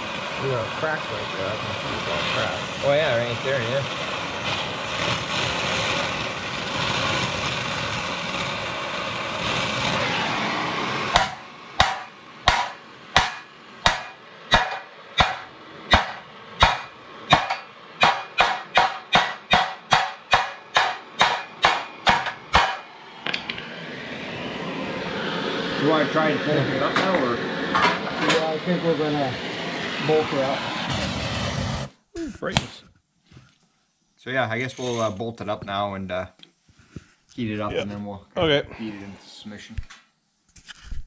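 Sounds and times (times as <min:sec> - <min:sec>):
gas torch flame hissing: 0:00.0 - 0:32.8
hammer striking metal: 0:11.1 - 0:23.7.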